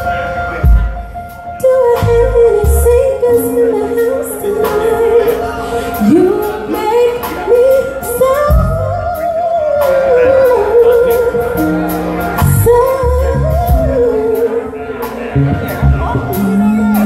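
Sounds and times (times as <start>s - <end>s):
bass and beat accompaniment: 0.0s - 17.0s
woman singing into a microphone: 1.5s - 15.3s, 16.0s - 17.0s.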